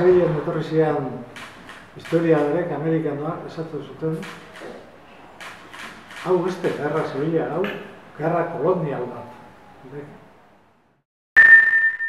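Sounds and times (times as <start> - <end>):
bright bell-like ding: 11.4 - 12.0.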